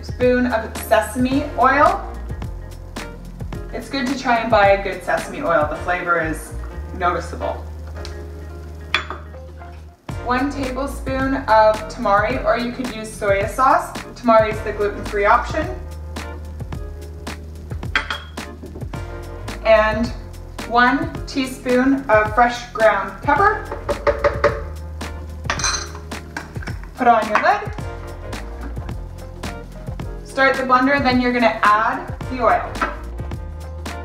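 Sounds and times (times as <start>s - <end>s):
quiet background music: 0.0s - 34.0s.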